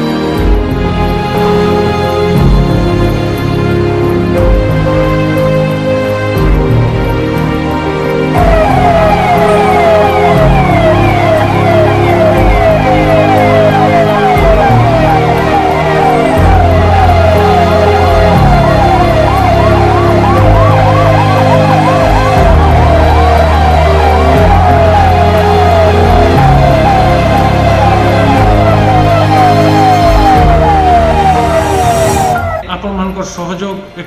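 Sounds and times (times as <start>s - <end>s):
background music with low bass: 0.0s - 34.0s
siren wailing: 6.6s - 32.8s.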